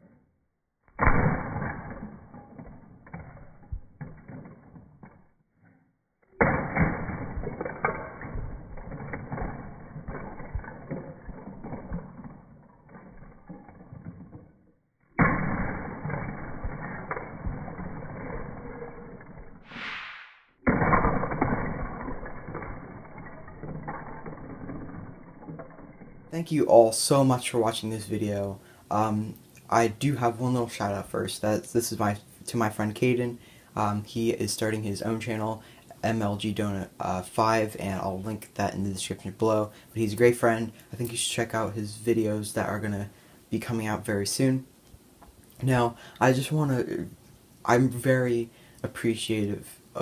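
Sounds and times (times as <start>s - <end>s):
lego bricks crashing: 1.0s - 5.3s, 6.4s - 19.8s, 20.6s - 44.6s
brief hiss: 19.7s - 20.4s.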